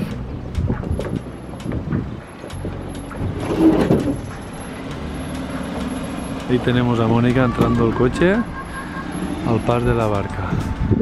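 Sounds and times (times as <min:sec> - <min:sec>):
car engine running low: 0:00.0 - 0:11.0.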